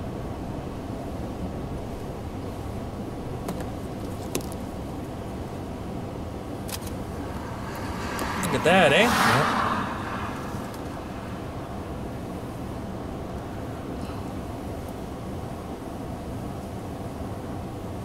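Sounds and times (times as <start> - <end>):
car engine idling: 3.2 - 15.5.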